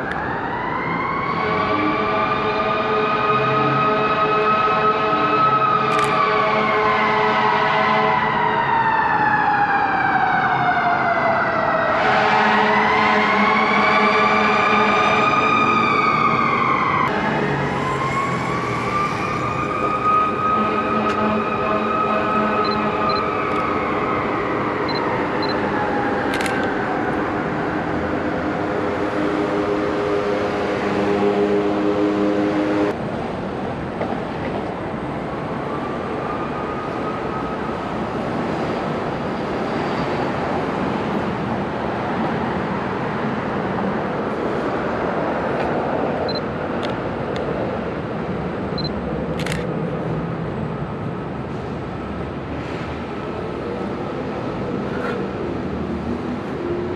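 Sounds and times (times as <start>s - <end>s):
siren wailing: 0.0s - 28.2s
street noise: 0.0s - 56.9s.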